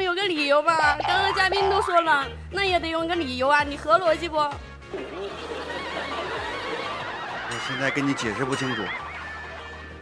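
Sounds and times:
studio audience laughing: 4.9 - 10.0.

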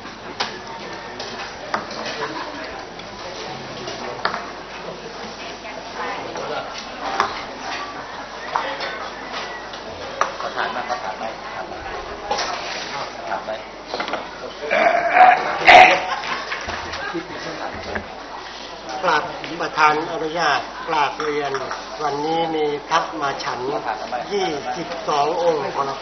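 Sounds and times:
murmur of crowd talking: 0.0 - 26.0.

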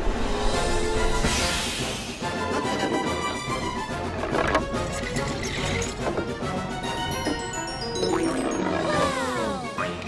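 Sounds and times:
cartoon music: 5.2 - 10.0.

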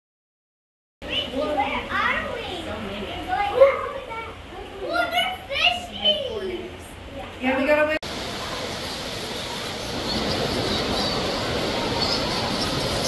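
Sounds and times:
children talking and calling out: 1.0 - 7.5, 8.1 - 13.0.

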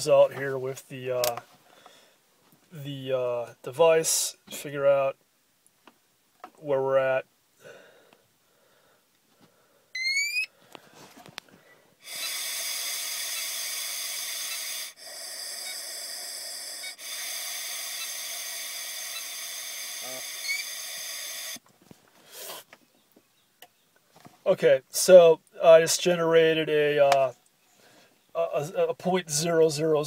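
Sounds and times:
short rising beep: 10.0 - 10.5
breath blown through tube: 12.0 - 21.6.

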